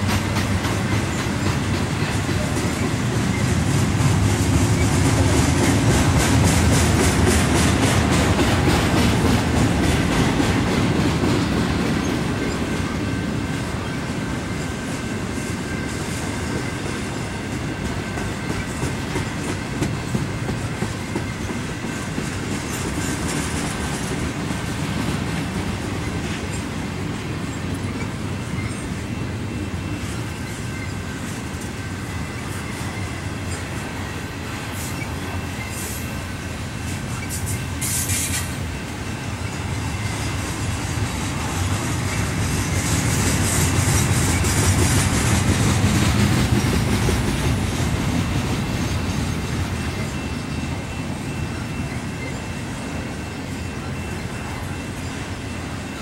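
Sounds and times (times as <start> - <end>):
train wheels clacking on rails: 0.0 - 56.0.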